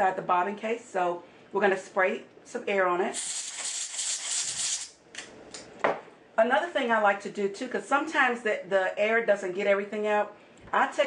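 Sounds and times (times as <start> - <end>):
compressed air hiss: 3.2 - 4.9.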